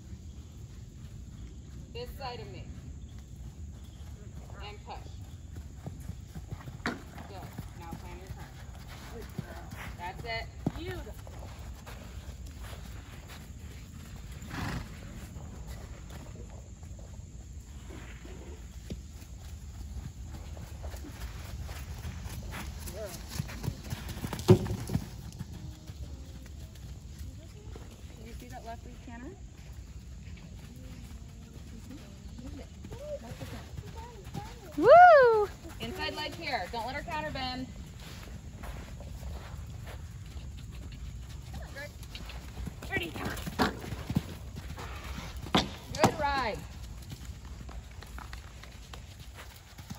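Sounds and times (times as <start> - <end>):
hoofbeats on sand: 0.0 - 49.9.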